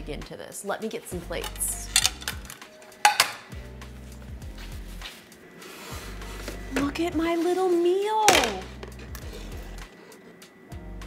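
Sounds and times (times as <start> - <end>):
dinner plates clinking: 1.4 - 3.6
background music with bass beat: 3.5 - 5.3.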